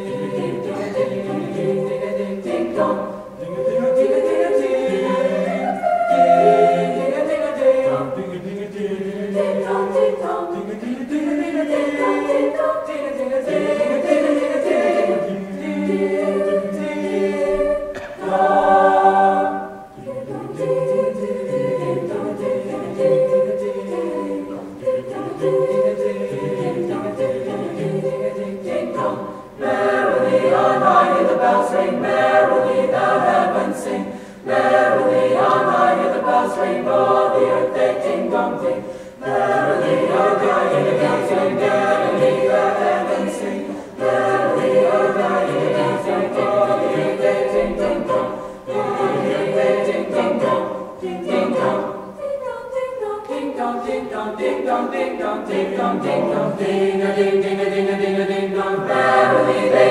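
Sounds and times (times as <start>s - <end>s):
choir singing in harmony: 0.0s - 59.9s.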